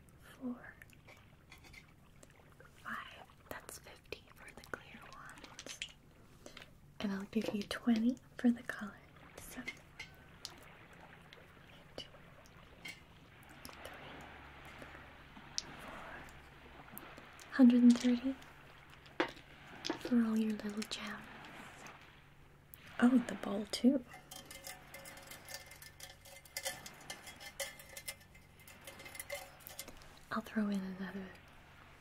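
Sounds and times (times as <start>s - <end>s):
soft rustle: 0.8s - 32.0s.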